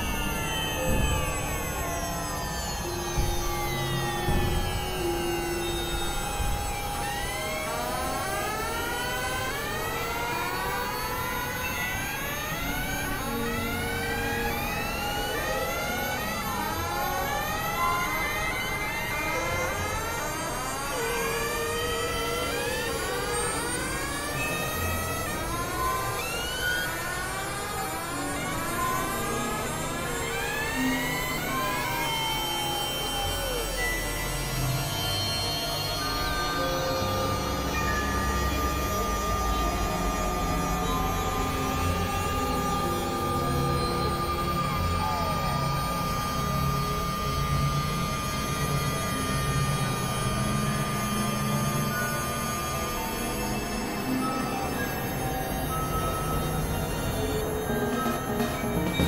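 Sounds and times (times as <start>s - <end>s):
synthesizer pitch sweeps: 0.0s - 59.0s
held synthesizer tones: 54.0s - 59.0s.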